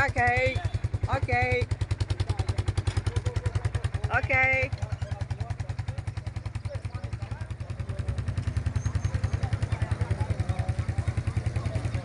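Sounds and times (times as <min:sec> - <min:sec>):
faint voices chattering: 0:00.0 - 0:12.0
small engine idling: 0:00.0 - 0:12.0.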